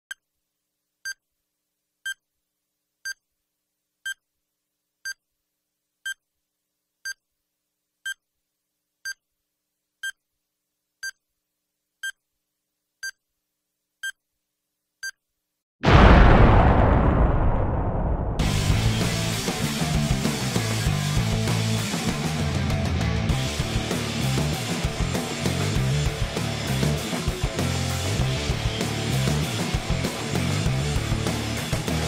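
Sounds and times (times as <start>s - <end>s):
sudden loud crash: 15.8s - 20.7s.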